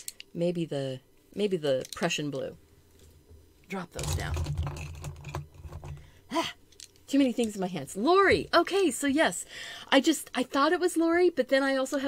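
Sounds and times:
pencils clattering into a mug: 4.0 - 6.0.

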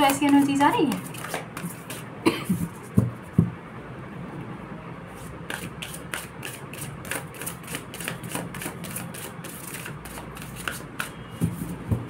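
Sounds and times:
woman coughing lightly: 2.2 - 2.7.

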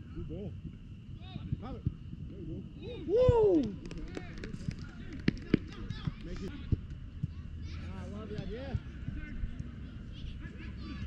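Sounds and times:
players calling and shouting: 1.2 - 11.0.

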